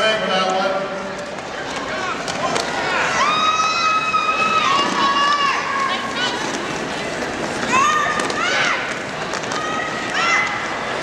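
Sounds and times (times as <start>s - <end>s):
crowd noise: 0.0s - 11.0s.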